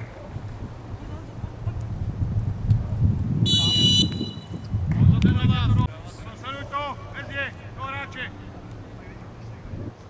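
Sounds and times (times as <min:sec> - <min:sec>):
wind rumble on microphone: 0:00.0 - 0:06.4, 0:09.4 - 0:10.0
referee's whistle blast: 0:03.5 - 0:04.6.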